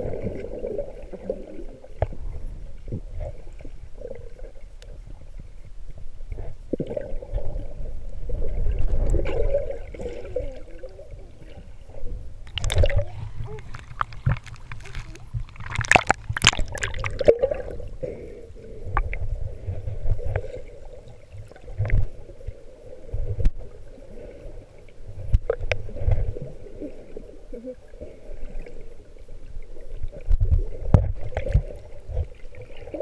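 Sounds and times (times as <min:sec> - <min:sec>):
muffled underwater rumble: 0:00.0 - 0:33.0
water gurgles: 0:00.0 - 0:33.0.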